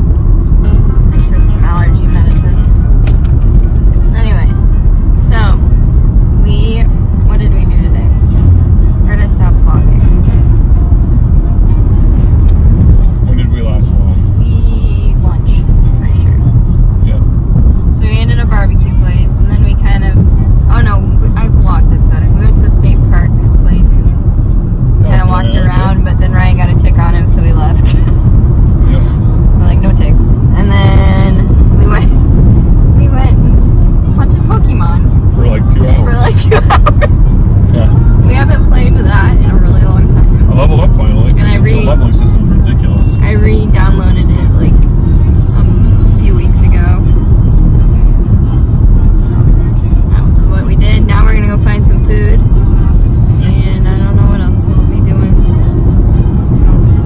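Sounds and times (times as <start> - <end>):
car road and engine rumble: 0.0 - 57.0
music: 0.1 - 57.0
voices: 1.1 - 2.8, 4.1 - 5.7, 6.4 - 8.4, 9.0 - 10.4, 13.3 - 17.2, 17.9 - 24.4, 25.0 - 28.2, 28.8 - 32.4, 33.0 - 48.3, 49.0 - 57.0.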